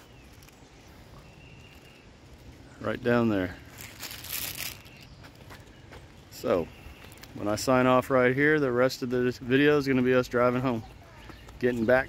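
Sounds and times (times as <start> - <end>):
phone rustling and crinkling: 0.0 - 0.8, 3.6 - 5.1
faint outdoor background: 0.0 - 12.0.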